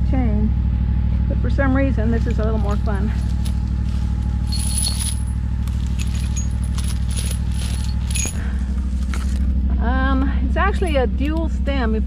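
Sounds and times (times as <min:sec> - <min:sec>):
tractor engine idling: 0:00.0 - 0:12.0
metallic clinking and jingling: 0:03.2 - 0:08.6.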